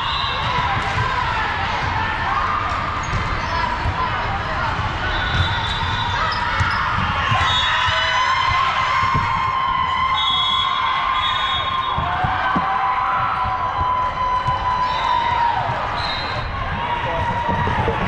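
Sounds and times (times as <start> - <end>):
crowd voices din: 0.0 - 18.0
volleyball thuds: 11.7 - 16.0.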